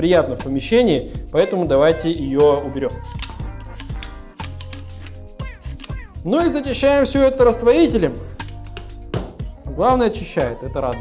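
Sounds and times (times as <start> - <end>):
background music: 0.0 - 11.0
knife scraping label off glass: 2.9 - 6.1.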